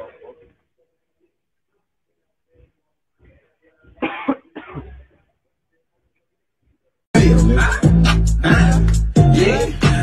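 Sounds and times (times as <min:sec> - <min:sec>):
man coughing hard: 0:04.0 - 0:05.0.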